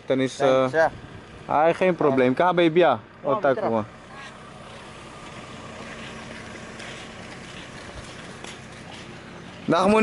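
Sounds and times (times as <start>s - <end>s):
low motor hum: 0.0s - 10.0s
outdoor background noise: 0.0s - 10.0s.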